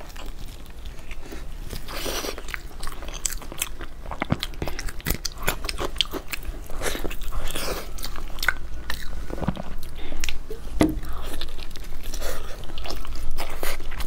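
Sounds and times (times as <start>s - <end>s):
person chewing and biting food: 0.0s - 14.0s.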